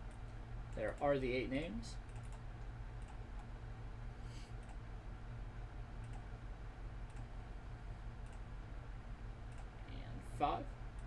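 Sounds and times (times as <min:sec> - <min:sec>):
steady low hum: 0:00.0 - 0:11.0
keyboard and mouse clicks: 0:02.1 - 0:02.4, 0:06.0 - 0:06.3, 0:07.1 - 0:07.3.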